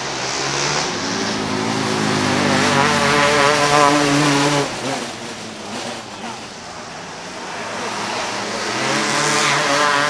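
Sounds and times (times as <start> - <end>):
racing kart engine buzzing: 0.0 - 10.0.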